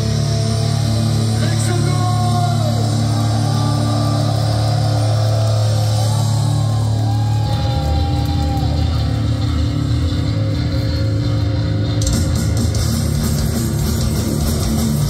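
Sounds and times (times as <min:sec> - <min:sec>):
live metal band playing: 0:00.0 - 0:15.0.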